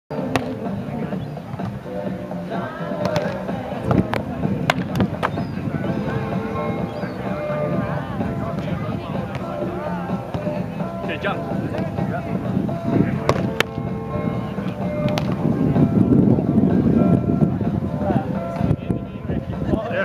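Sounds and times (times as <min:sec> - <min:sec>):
music playing: 0:00.1 - 0:20.0
people talking: 0:00.2 - 0:20.0
sharp slaps of volleyball hits: 0:00.3 - 0:00.6, 0:03.0 - 0:05.4, 0:15.1 - 0:15.4.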